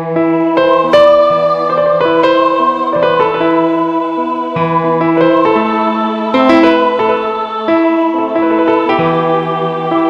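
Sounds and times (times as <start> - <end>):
keyboard music: 0.0 - 10.0.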